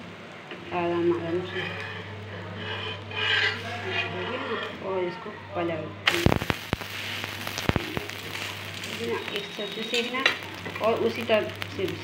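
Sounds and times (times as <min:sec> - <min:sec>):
food sizzling in oil: 0:06.1 - 0:12.0.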